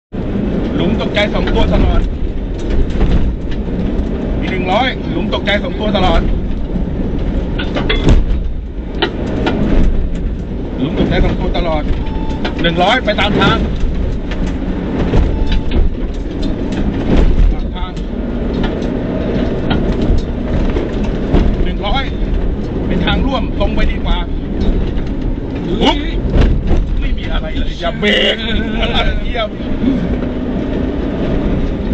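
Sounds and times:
car engine and tyres on dirt: 0.1 - 31.9
sharp knocks: 6.2 - 10.5, 13.3 - 22.8, 24.4 - 27.7.

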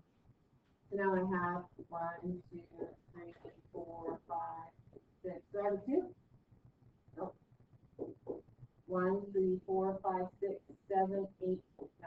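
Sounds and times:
person speaking: 0.9 - 4.7, 5.3 - 6.1, 8.0 - 12.0.

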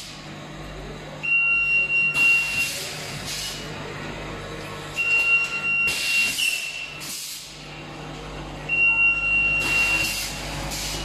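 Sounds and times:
low machine hum: 0.0 - 11.0
compressed air hiss: 7.0 - 7.6, 10.0 - 11.0.

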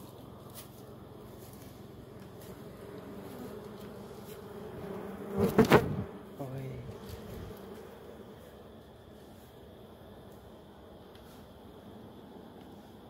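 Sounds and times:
honeybees buzzing: 0.0 - 13.0.

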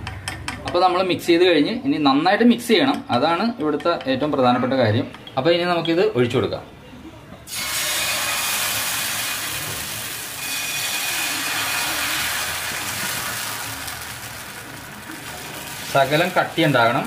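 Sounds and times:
batter sizzling in a hot pan: 7.5 - 17.0.

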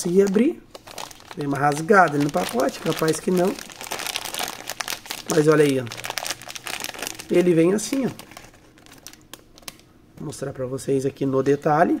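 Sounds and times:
plastic bag crinkling: 0.0 - 9.8
small clicks of plastic bag: 7.9 - 9.9.

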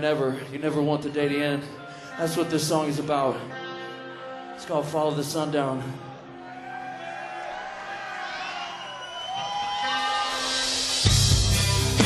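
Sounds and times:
long gliding shouts: 6.0 - 10.9
audience cheering and whooping: 6.1 - 12.0.

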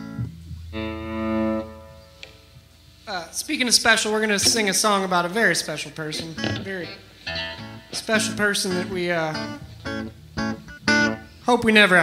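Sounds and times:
electric guitar notes: 0.0 - 3.0, 4.4 - 4.8, 6.0 - 11.7
low steady amp hum: 0.0 - 12.0.

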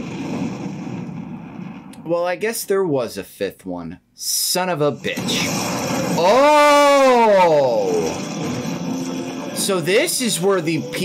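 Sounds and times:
low rumbling noise: 0.0 - 2.2.

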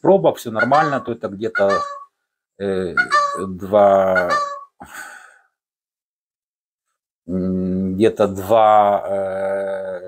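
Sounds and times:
man exhaling breathily: 4.8 - 5.6.

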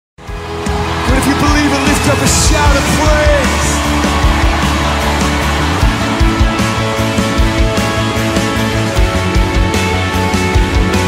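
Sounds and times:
crowd cheering and whooping: 0.2 - 9.3.

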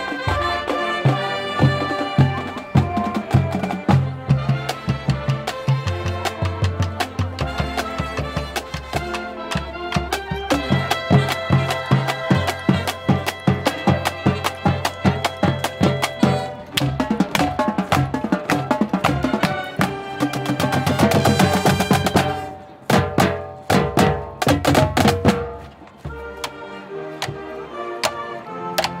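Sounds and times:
brass and wind chords: 0.0 - 23.6, 25.0 - 29.0
marching drums beating: 0.0 - 29.0.

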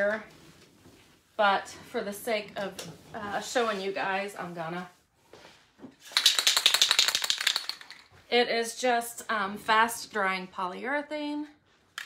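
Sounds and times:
aerosol can ball rattling: 6.0 - 8.2.

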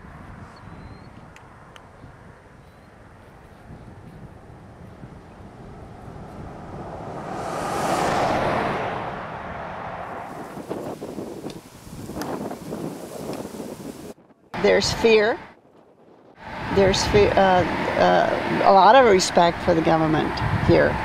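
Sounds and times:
wind rumbling on microphone: 0.0 - 21.0
vehicle passing: 3.0 - 11.9.

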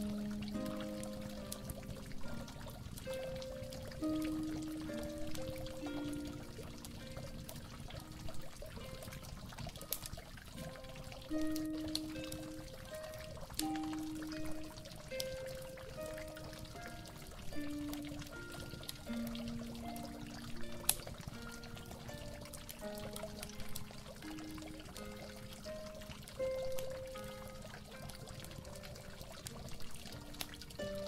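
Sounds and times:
harp melody: 0.0 - 9.4, 10.0 - 29.1
water pouring and trickling: 0.0 - 31.0.

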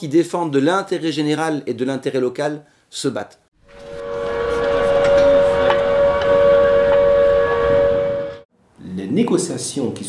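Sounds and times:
two-note horn blast: 3.6 - 8.5
rushing noise: 3.7 - 8.4.

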